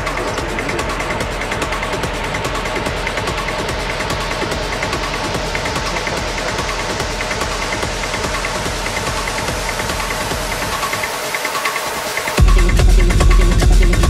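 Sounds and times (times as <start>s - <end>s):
hard techno music: 0.0s - 14.0s.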